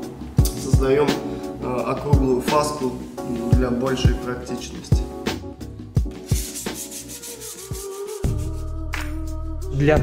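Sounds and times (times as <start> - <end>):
background music with drumbeat: 0.0 - 10.0
hand sanding a counter edge: 6.2 - 8.5.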